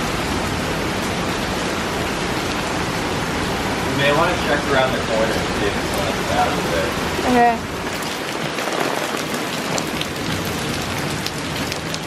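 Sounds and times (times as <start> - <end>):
heavy rain splashing on pavement: 0.0 - 12.0.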